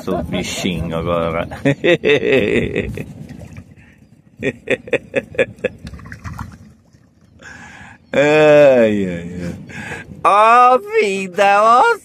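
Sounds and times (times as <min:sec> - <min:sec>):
man laughing: 0:01.4 - 0:03.1, 0:04.4 - 0:05.8.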